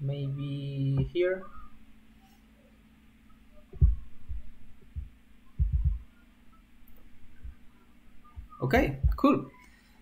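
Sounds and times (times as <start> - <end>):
steady low hum: 0.0 - 10.0
dull low thumps: 3.7 - 6.1, 7.0 - 9.2.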